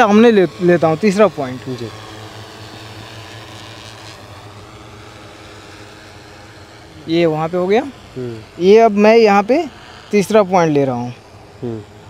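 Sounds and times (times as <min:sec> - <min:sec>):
drone rotors humming: 0:00.0 - 0:12.0.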